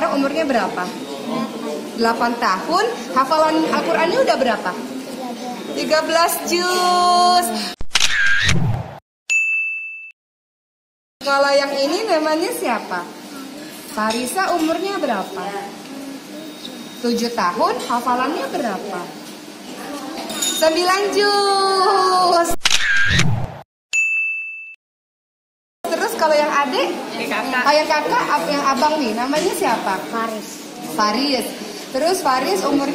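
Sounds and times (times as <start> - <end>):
bright electronic ding: 9.3 - 10.2, 24.0 - 24.8.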